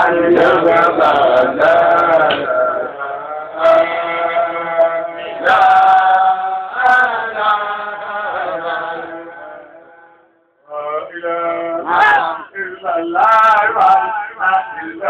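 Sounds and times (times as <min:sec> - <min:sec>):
men chanting: 0:00.0 - 0:10.1, 0:10.7 - 0:15.0.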